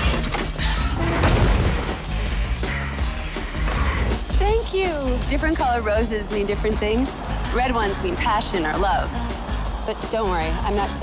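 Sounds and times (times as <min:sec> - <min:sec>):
soundtrack music with heavy bass: 0:00.0 - 0:11.0.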